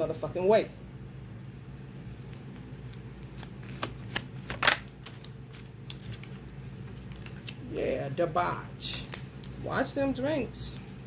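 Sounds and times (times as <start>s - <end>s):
steady low hum: 0.0s - 11.0s
cards clicking and snapping: 3.2s - 6.0s.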